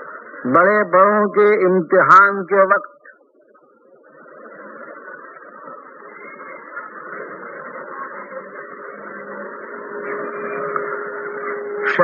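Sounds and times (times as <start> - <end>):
faint steady hum: 0.0 - 12.0
muffled background noise: 0.0 - 12.0.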